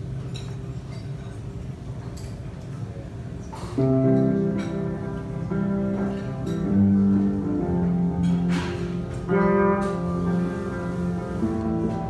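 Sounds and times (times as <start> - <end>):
electric guitar sustained chords: 3.8 - 12.0.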